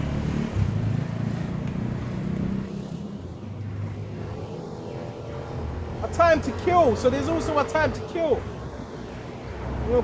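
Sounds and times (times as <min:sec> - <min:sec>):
vehicle engine rumbling: 0:00.0 - 0:10.0.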